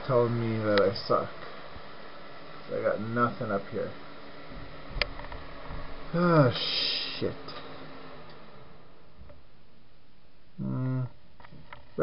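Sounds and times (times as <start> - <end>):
man's wordless vocal sound: 10.6 - 11.2.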